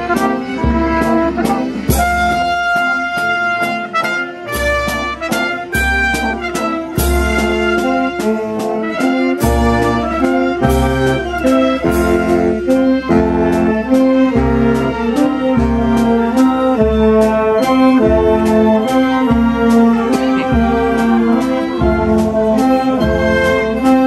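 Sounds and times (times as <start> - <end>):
wind band playing a tune: 0.0 - 24.0.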